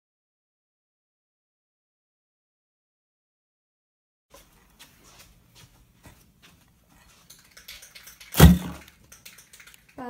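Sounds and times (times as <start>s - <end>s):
faint clicks and rustling: 6.5s - 10.0s
loud thump: 8.4s - 8.8s.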